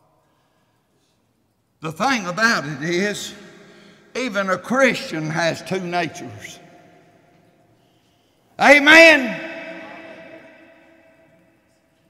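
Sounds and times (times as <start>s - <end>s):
man shouting in reverberant hall: 1.8s - 11.7s.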